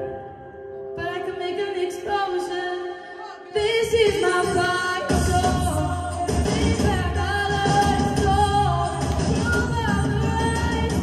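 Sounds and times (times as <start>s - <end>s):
woman singing pop song: 0.0s - 11.0s
backing music: 3.6s - 11.0s.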